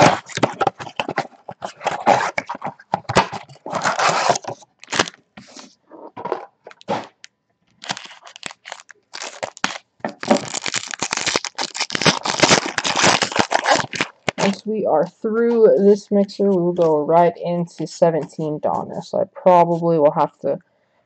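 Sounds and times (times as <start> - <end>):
plastic wrappers crinkling: 0.0 - 14.7.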